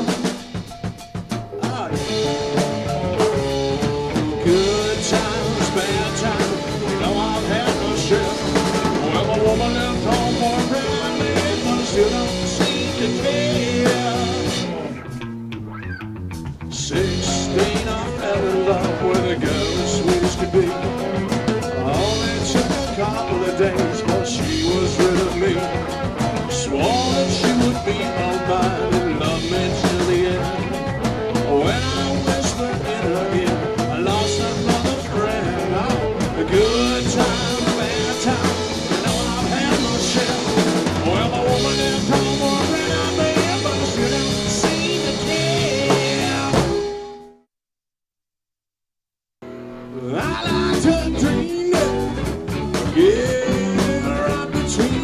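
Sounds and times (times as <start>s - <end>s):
drum kit beat: 0.0s - 47.2s, 50.2s - 55.0s
rock band playing: 0.0s - 47.4s, 49.4s - 55.0s.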